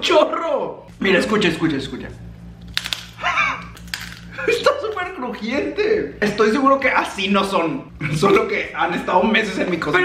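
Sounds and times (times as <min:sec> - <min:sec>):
crunching cheese puff: 0:02.7 - 0:04.3.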